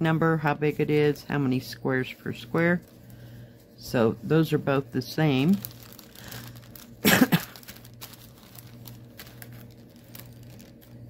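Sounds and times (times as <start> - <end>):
fabric rustling: 2.6 - 11.0
person coughing: 7.0 - 7.7.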